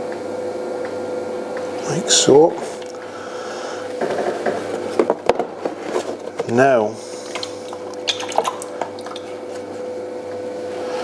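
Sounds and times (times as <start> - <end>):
potter's wheel humming: 0.0 - 11.0
water dripping: 7.3 - 9.3.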